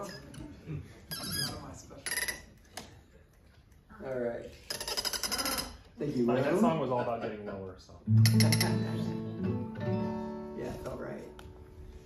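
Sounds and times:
acoustic guitar strings picked: 8.1 - 10.6.

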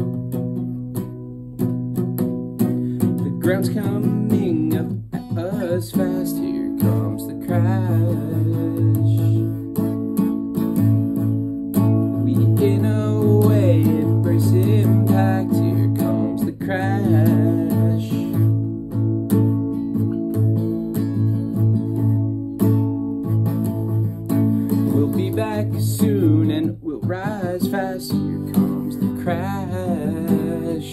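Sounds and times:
acoustic guitar strumming: 0.0 - 30.9
wordless vocals: 3.2 - 9.7, 12.2 - 18.6, 24.8 - 30.9.

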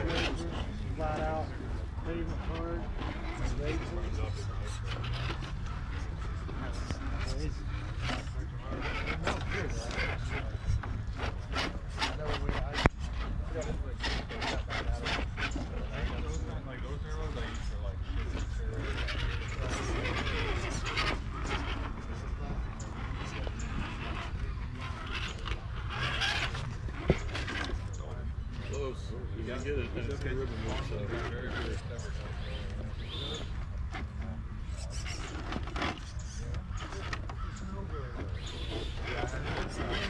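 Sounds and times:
people talking in background: 0.0 - 40.0.

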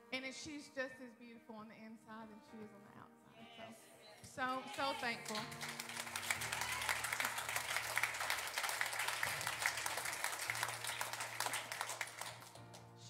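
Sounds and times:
crowd applauding: 4.7 - 13.0.

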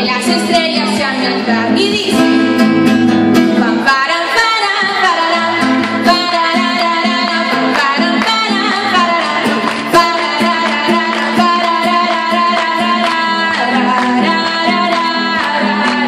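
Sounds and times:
woman singing: 0.0 - 2.6, 3.4 - 16.0
acoustic guitar strumming: 0.0 - 16.0.

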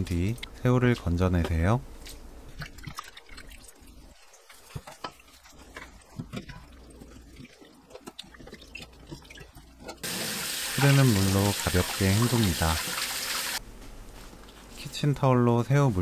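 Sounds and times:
water splashing in metal bowl: 6.6 - 13.6.

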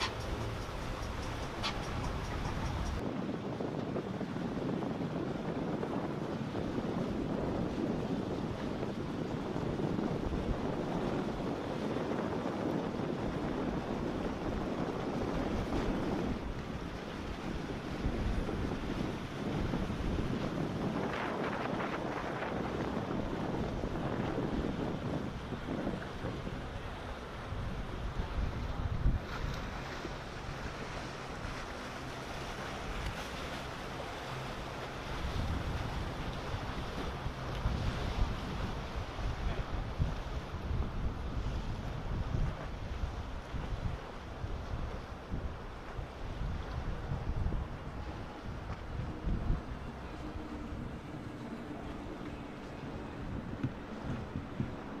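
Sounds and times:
motorboats rushing past: 0.0 - 55.0
waves: 0.0 - 55.0
wind buffeting microphone: 0.0 - 55.0.

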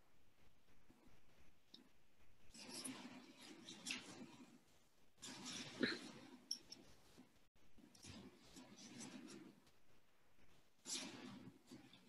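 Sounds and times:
sniffling into a tissue: 5.2 - 6.3.

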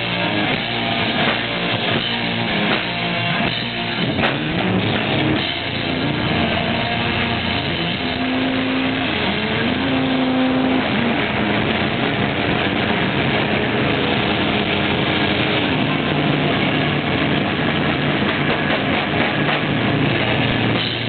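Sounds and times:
distorted electric guitars: 0.0 - 21.0
drums: 0.0 - 21.0.

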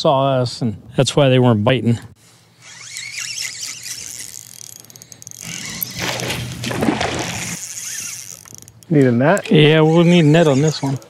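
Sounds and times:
fishing reel drag buzzing: 2.5 - 11.0.

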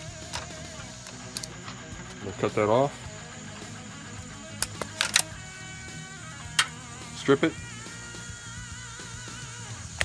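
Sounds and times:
quiet background music: 0.0 - 10.0
wire stripper clicking: 0.2 - 2.2, 4.1 - 5.4, 6.5 - 6.8.

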